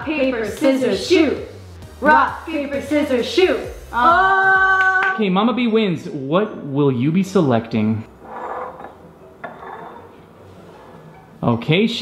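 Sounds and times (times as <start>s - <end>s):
glass scraping across tabletop: 8.0s - 11.4s.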